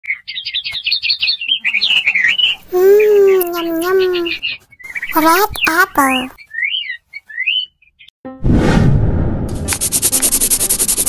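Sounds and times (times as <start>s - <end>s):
high bird-like chirping: 0.0s - 8.1s.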